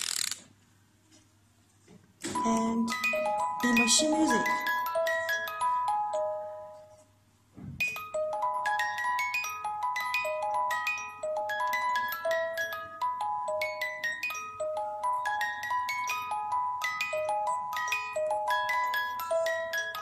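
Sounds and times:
music box playing: 2.4 - 7.1, 7.8 - 20.0.

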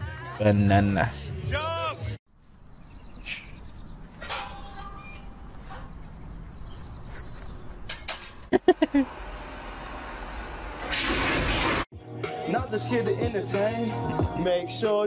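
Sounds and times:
metal gate squeaking: 4.1 - 8.4.

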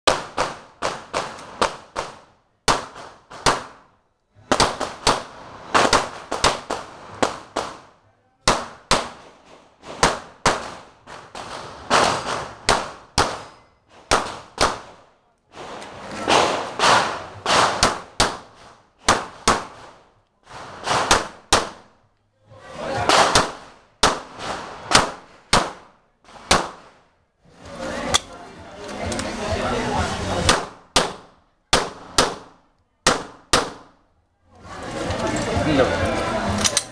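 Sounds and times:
pistol shots with echo: 4.5 - 15.0, 16.3 - 19.8, 20.8 - 21.9, 23.1 - 26.9, 30.4 - 34.0.

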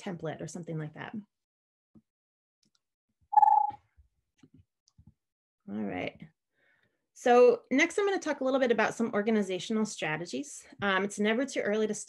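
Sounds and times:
short high tone: 3.4 - 3.8.

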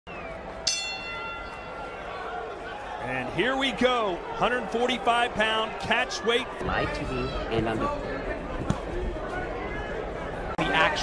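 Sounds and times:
arena crowd noise: 0.1 - 11.0
boxing ring bell: 0.7 - 2.0.

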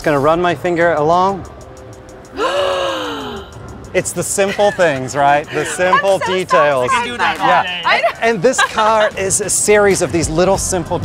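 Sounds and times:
woman exclaiming ooh: 5.5 - 7.2.

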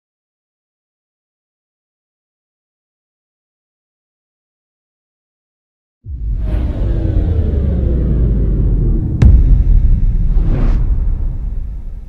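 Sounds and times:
deep rumble: 6.1 - 12.0
sharp hit: 6.1 - 12.0.

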